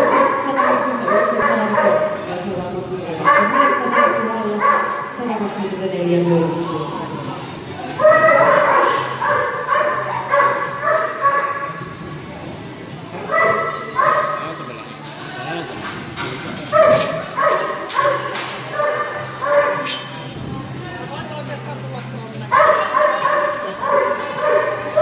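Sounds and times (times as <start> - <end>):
dog barking in high yips: 16.7 - 20.0.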